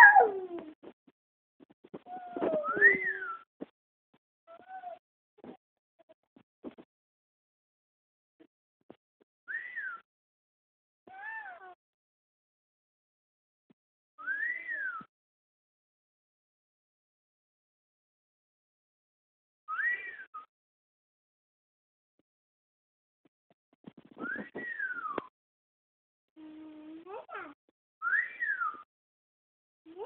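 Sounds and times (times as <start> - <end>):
toddler whistle-like hoo: 2.1 - 3.4, 9.5 - 10.0, 14.2 - 15.1, 19.7 - 20.5, 24.2 - 25.3, 28.0 - 28.9
person whistling: 2.6 - 3.4, 24.2 - 25.2.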